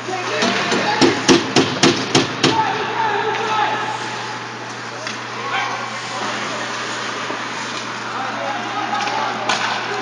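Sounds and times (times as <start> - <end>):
hockey sticks knocking on boards: 0.2 - 2.7, 8.9 - 10.0.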